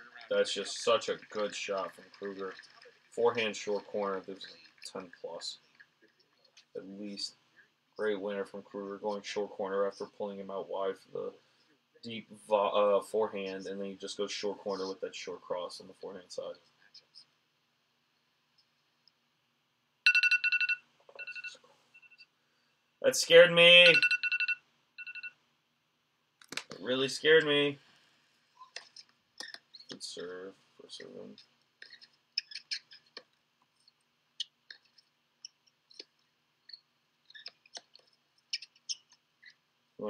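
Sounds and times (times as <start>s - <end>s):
faint clicks and ticks: 0.0s - 6.8s, 31.0s - 39.7s.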